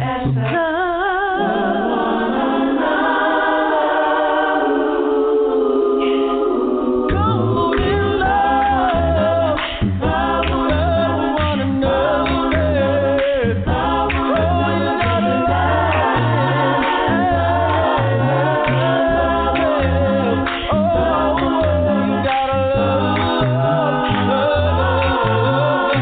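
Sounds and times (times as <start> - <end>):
gospel vocal group singing: 0.0 - 26.0.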